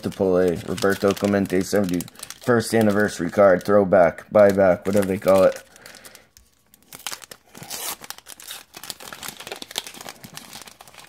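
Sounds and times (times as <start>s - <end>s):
wrapper crackling and crinkling: 0.0s - 11.0s.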